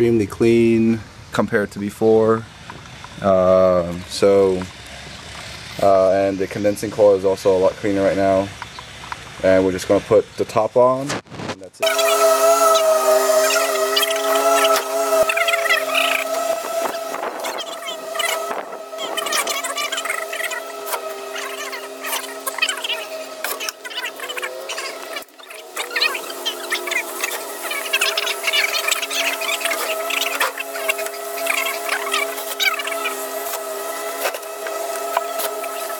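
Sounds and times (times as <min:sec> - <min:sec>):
steady hum: 0:00.0 - 0:35.9.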